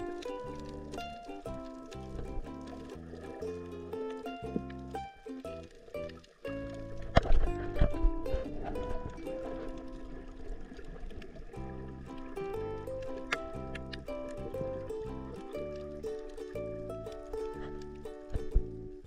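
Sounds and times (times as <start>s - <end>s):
music with stepping melody: 0.0s - 10.0s, 11.6s - 19.0s.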